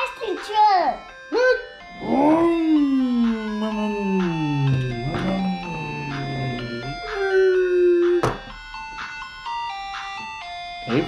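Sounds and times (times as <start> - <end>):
ice cream truck jingle: 0.0 - 11.0.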